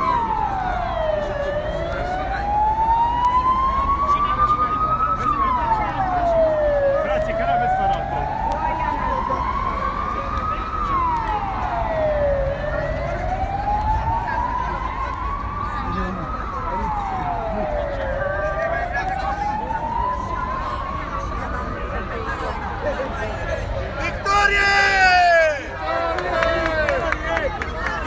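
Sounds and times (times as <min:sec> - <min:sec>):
electronic siren wailing: 0:00.0 - 0:23.0.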